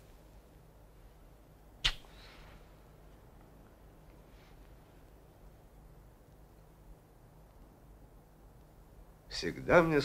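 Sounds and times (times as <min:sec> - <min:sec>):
hands slapping with echo: 0:01.8 - 0:02.1.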